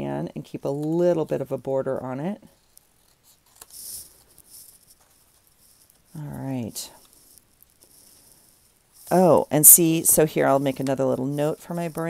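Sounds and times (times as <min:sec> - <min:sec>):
photo print brushing on paper: 0:02.5 - 0:12.0.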